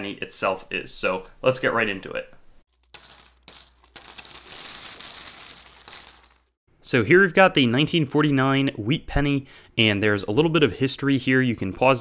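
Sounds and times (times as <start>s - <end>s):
coins clinking: 2.7s - 6.6s.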